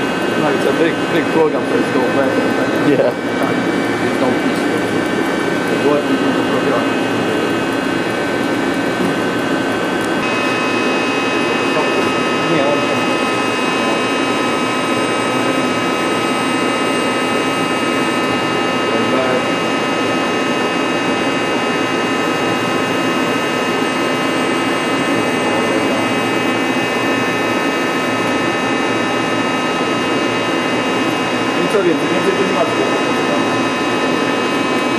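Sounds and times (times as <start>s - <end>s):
lathe running with whining tones: 0.0s - 34.9s.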